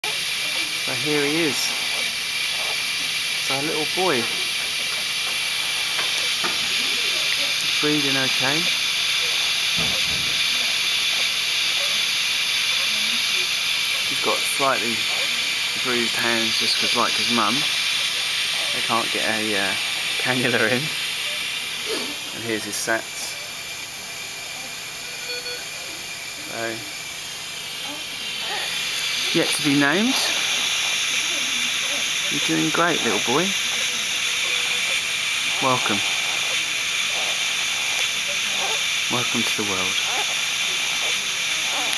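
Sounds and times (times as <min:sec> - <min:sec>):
high-pitched hiss of oxygen flowing: 0:00.0 - 0:41.9
faint short tone: 0:25.1 - 0:25.6.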